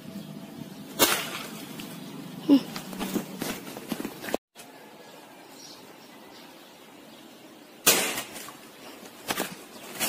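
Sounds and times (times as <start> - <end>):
gunshot crack: 7.8 - 8.3.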